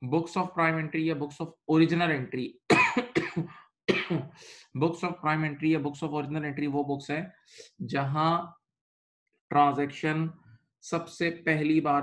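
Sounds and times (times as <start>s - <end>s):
man clearing his throat: 2.7s - 4.4s.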